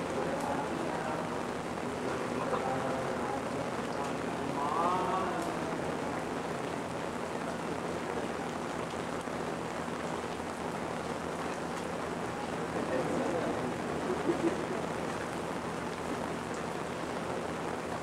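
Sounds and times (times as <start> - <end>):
faint indistinct voice: 0.0 - 8.5
steady hiss noise: 0.0 - 18.0.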